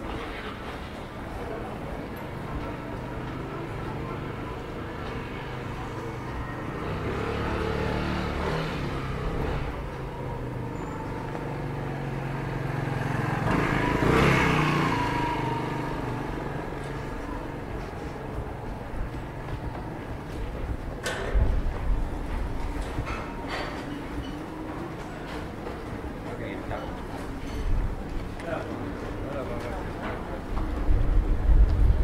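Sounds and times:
motor scooter engine passing: 0:01.3 - 0:26.2.

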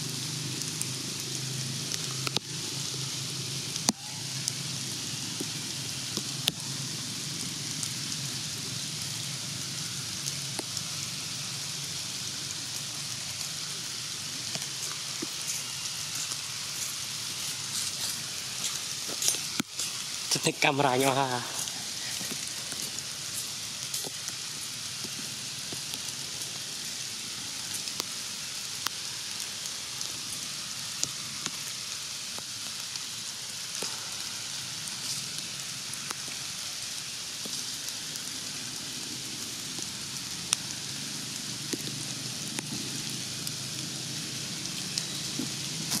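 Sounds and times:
steady outdoor hiss: 0:00.0 - 0:46.0.

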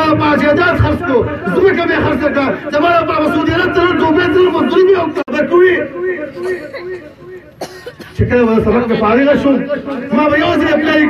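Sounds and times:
man speaking over a microphone: 0:00.0 - 0:07.4, 0:08.0 - 0:11.0
cough through microphone: 0:06.2 - 0:08.5.

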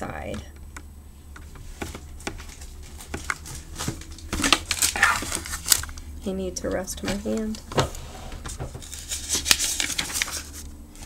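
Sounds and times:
book pages rustling and crinkling: 0:01.4 - 0:06.1, 0:06.7 - 0:11.0.

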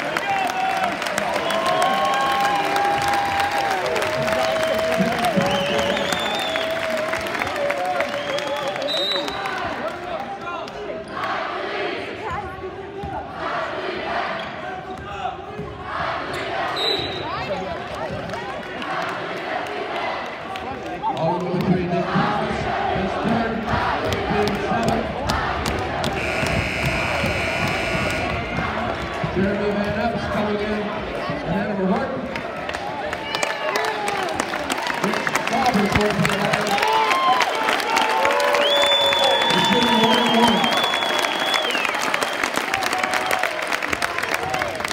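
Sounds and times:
referee's whistle: 0:05.4 - 0:06.8, 0:08.1 - 0:09.5, 0:16.8 - 0:17.3, 0:26.2 - 0:28.3, 0:38.6 - 0:42.4
crowd chatter and shouts: 0:08.6 - 0:38.3.

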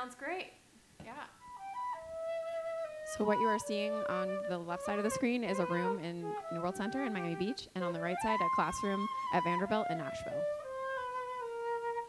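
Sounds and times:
flute notes: 0:01.4 - 0:12.0.

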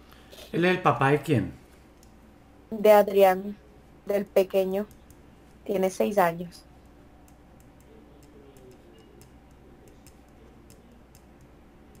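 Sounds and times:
typing on computer keyboard: 0:07.2 - 0:12.0.

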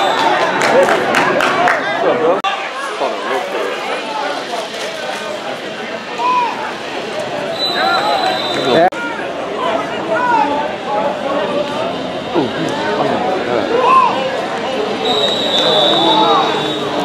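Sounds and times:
players and spectators shouting: 0:05.6 - 0:17.0.

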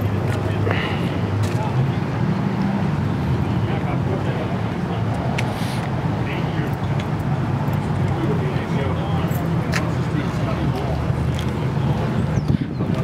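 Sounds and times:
car engines rumbling: 0:00.0 - 0:13.0.

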